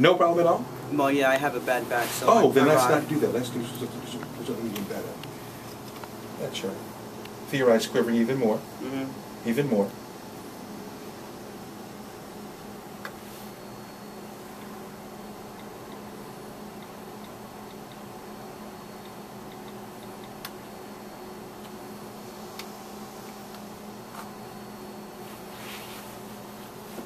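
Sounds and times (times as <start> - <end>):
electrical hum and hiss: 0.0 - 27.0.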